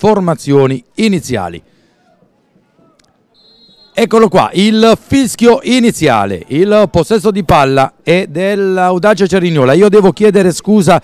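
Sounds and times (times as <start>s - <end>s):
faint click: 3.0s - 3.2s
referee's whistle blast: 3.3s - 4.5s.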